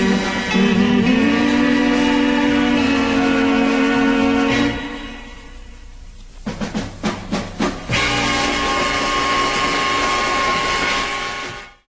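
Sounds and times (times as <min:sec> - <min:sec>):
drum fill: 0:06.4 - 0:11.7.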